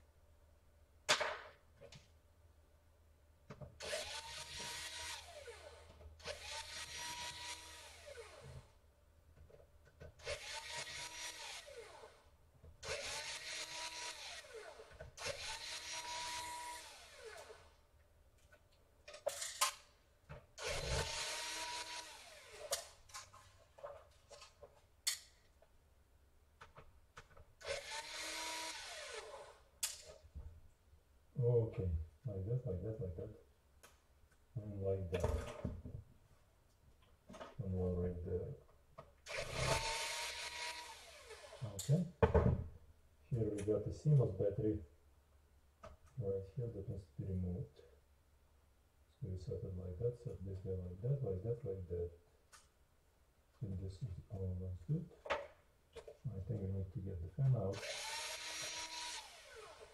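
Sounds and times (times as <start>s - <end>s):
electric screwdriver whining: 3.8s - 8.6s, 10.2s - 12.1s, 12.8s - 17.7s, 20.6s - 22.9s, 27.6s - 29.6s, 39.3s - 41.7s, 57.8s - 59.9s.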